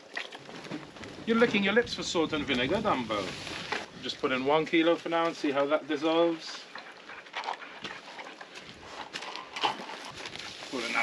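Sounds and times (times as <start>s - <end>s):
stick scraping salt in bucket: 10.1s - 11.0s.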